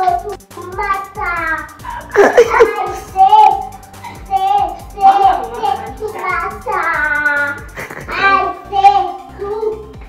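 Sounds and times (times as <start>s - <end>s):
song with steady beat: 0.0s - 10.0s
child singing: 2.6s - 3.7s, 4.3s - 9.9s.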